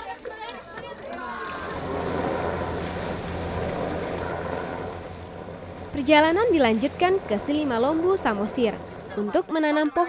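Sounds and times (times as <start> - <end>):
water noise: 0.0 - 10.0
boat engine running: 0.6 - 10.0.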